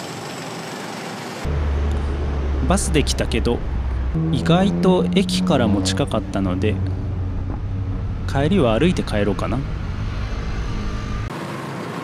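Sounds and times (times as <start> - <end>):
low rumble of road traffic: 1.3 - 12.0.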